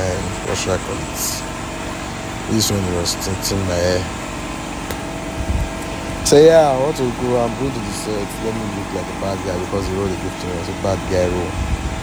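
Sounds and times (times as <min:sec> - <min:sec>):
mechanical hum: 0:00.0 - 0:12.0.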